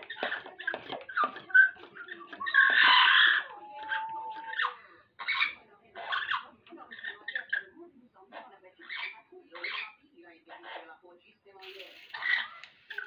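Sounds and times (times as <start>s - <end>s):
parrot chattering calls: 0.0s - 7.7s
parrot harsh squawk: 2.3s - 7.7s, 8.8s - 10.0s, 12.1s - 13.0s.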